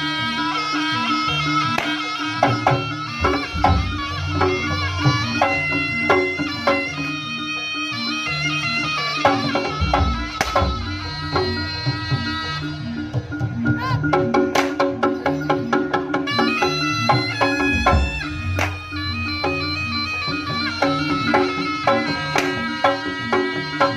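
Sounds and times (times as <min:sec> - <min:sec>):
hand drums: 0:00.0 - 0:23.9
reedy wind instrument melody: 0:00.0 - 0:23.9.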